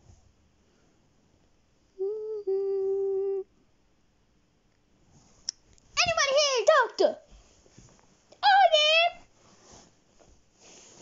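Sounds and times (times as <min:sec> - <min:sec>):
child humming: 0:02.0 - 0:03.5.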